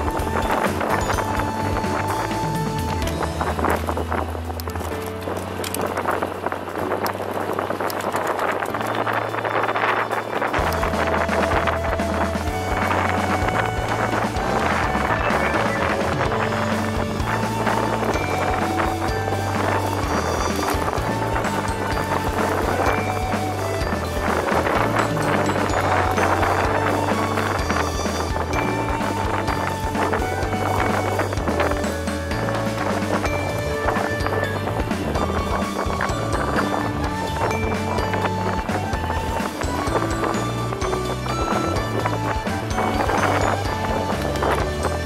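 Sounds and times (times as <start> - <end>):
background music with bass line: 0.0 - 45.0.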